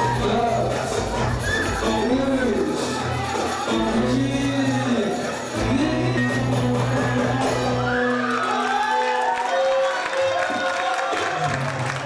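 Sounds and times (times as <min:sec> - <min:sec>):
guests cheering and whooping: 0:00.0 - 0:05.2, 0:06.8 - 0:12.0
party music: 0:00.0 - 0:11.9.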